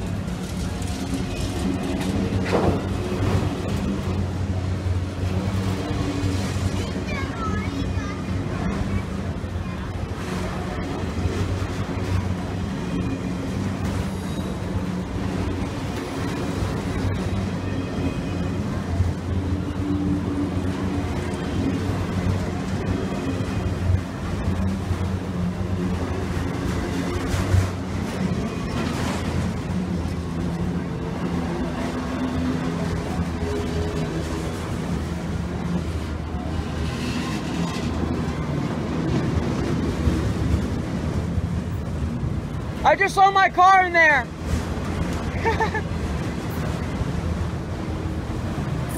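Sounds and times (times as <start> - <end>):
train wheels rumbling on rail: 0.0 - 48.9.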